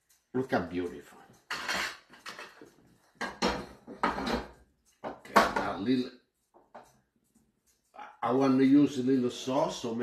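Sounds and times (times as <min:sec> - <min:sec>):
metal utensil scraping a pan: 0:01.5 - 0:04.5.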